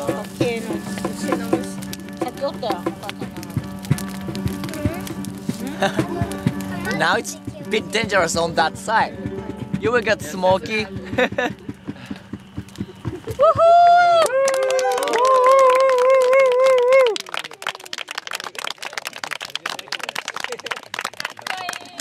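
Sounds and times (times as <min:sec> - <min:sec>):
small group clapping: 0:13.7 - 0:22.0.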